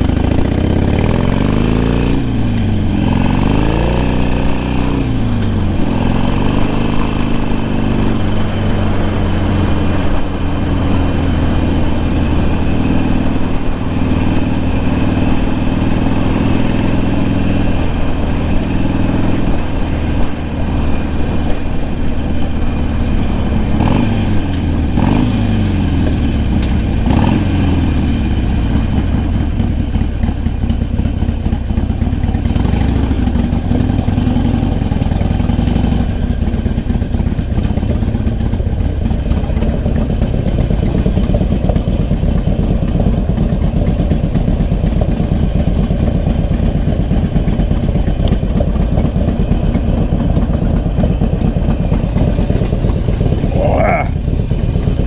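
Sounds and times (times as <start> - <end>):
motorcycle engine rumble: 0.0 - 55.0.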